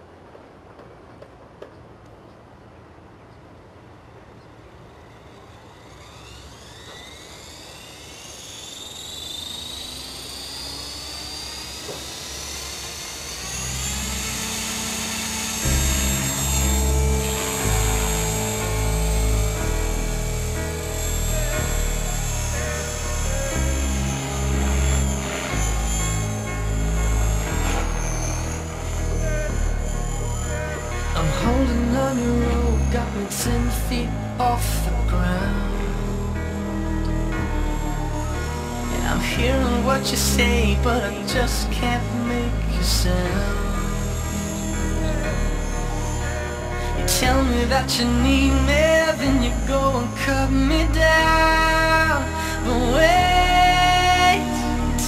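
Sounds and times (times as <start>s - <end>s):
rc helicopter motor whine: 4.1s - 55.0s.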